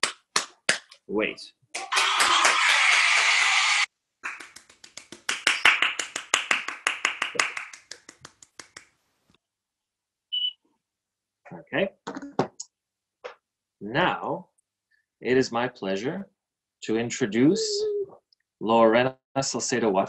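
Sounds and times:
people clapping and cheering: 0:00.0 - 0:00.9, 0:01.8 - 0:08.9
quick hand claps: 0:00.0 - 0:01.0, 0:04.2 - 0:09.0.

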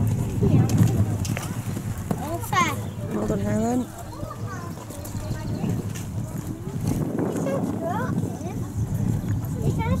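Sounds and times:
low outdoor rumble: 0:00.0 - 0:10.0
people talking: 0:00.0 - 0:10.0.

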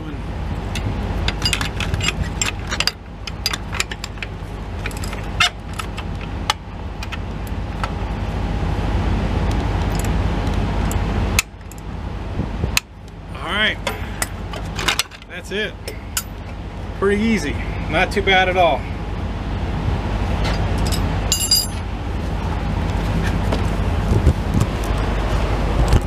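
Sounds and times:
steady low rumble: 0:00.0 - 0:26.0.

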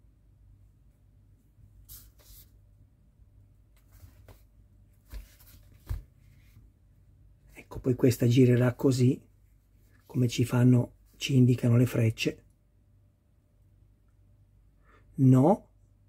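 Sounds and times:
person speaking: 0:07.5 - 0:09.3, 0:10.0 - 0:12.5.

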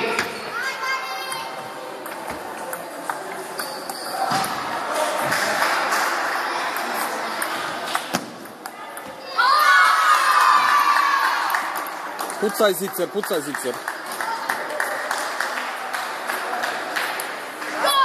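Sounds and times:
children shouting and cheering: 0:09.2 - 0:11.7, 0:17.8 - 0:18.0.

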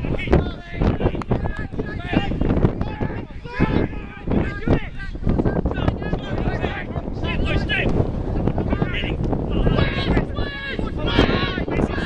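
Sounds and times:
players shouting: 0:00.0 - 0:12.0
wind buffeting microphone: 0:00.0 - 0:12.0.

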